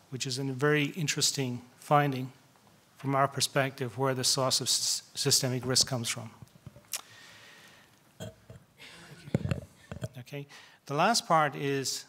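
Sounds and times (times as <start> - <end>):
microphone handling bumps and rubbing: 5.6 - 6.9, 8.5 - 10.2.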